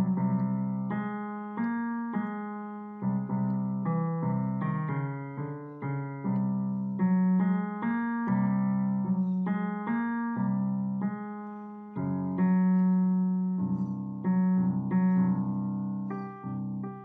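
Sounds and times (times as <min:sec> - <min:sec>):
slow gentle piano piece: 0:00.0 - 0:17.0.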